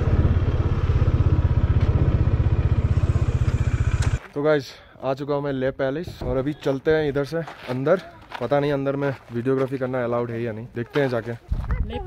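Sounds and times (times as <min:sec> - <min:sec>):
motorcycle engine at low revs: 0:00.0 - 0:04.2.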